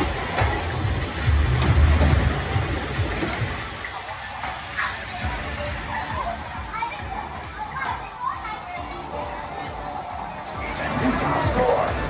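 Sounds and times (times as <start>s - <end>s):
children chattering: 3.4s - 12.0s.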